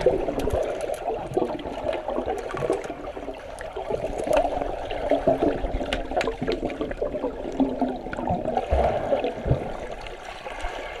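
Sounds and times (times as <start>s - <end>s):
underwater churning and gurgling: 0.0s - 11.0s.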